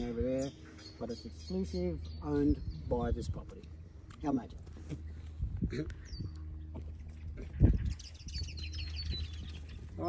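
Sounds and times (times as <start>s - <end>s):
steady low rumble: 0.0s - 10.0s
bird whistling and chirping: 7.5s - 10.0s.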